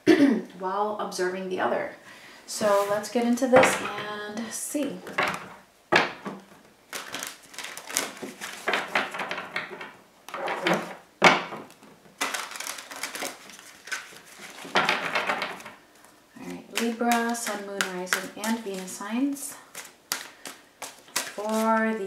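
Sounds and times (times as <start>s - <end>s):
cards being shuffled: 6.9s - 9.3s, 11.7s - 22.0s.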